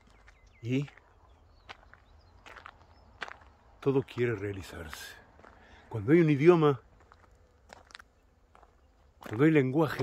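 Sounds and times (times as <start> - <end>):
faint outdoor background noise: 0.0 - 10.0
footsteps on gravel: 0.0 - 10.0.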